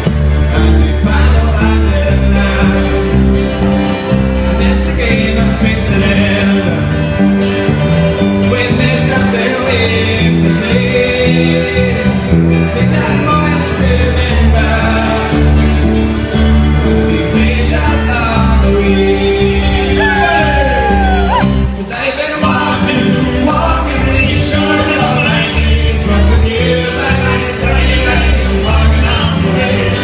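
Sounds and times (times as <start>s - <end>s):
electric bass: 0.0s - 30.0s
keyboard: 0.0s - 30.0s
man singing: 0.0s - 30.0s
strummed acoustic guitar: 0.0s - 30.0s.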